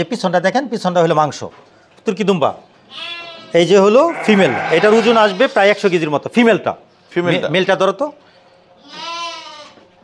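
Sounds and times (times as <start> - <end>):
sheep bleating: 2.9 - 5.8, 8.8 - 9.8.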